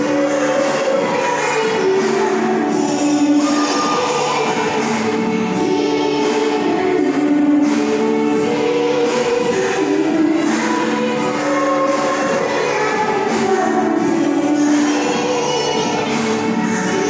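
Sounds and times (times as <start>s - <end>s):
group of voices singing: 0.0s - 17.0s.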